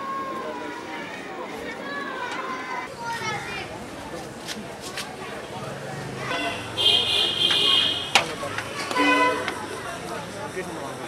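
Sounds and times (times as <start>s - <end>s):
children's voices: 0.0s - 4.4s, 5.1s - 10.4s
street ambience: 0.0s - 11.0s.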